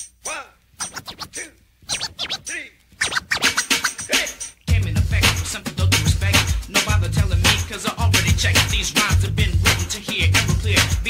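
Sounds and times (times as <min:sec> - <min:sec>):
turntable scratching: 0:00.8 - 0:11.0.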